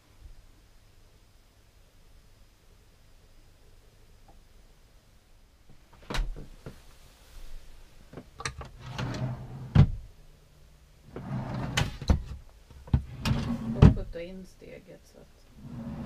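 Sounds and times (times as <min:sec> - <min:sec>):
drawer knocking open and shut: 0:08.5 - 0:10.0, 0:11.1 - 0:14.1
wooden drawer sliding on runners: 0:08.8 - 0:09.9, 0:11.1 - 0:14.0, 0:15.6 - 0:16.0.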